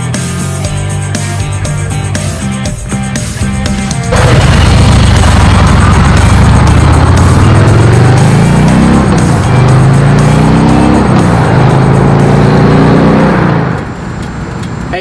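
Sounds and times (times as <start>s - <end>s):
motorcycle engine accelerating: 0.1s - 14.8s.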